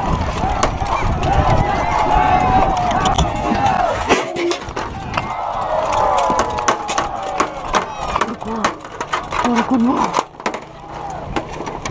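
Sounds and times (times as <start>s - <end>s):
rough wind rush on microphone: 0.0s - 8.2s
horse hoofbeats galloping: 0.0s - 11.9s
long held shout: 0.8s - 4.1s.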